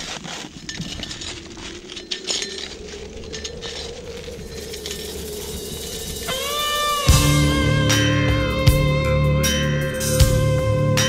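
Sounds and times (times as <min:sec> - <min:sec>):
wavering low tone: 0:00.6 - 0:11.0
slide guitar note bending: 0:06.3 - 0:11.0.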